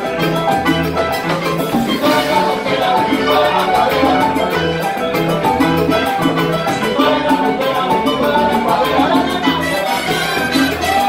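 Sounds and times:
salsa band playing: 0.0 - 11.0.

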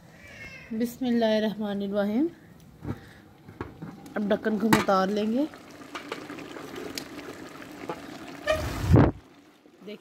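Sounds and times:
pot bubbling and hissing: 3.1 - 10.0.

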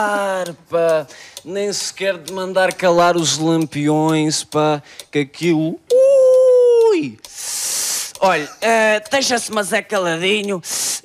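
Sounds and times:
breath hiss into microphone: 7.3 - 8.2, 10.6 - 11.0.

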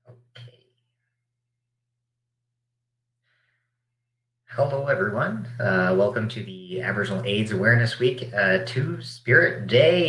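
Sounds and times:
person breathing in: 3.2 - 3.8
person speaking: 4.5 - 10.0.

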